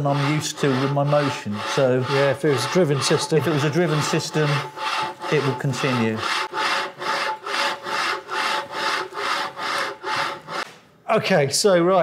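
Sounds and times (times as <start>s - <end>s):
carriage wheels rasping along rail: 0.0s - 10.6s.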